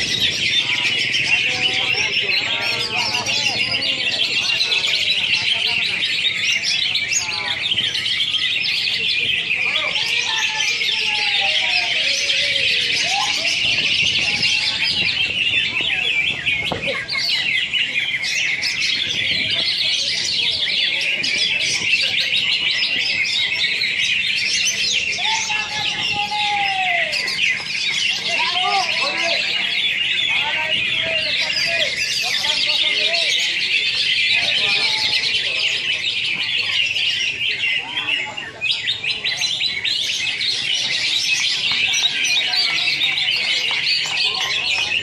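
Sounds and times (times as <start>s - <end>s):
birds chirping and trilling: 0.0s - 45.0s.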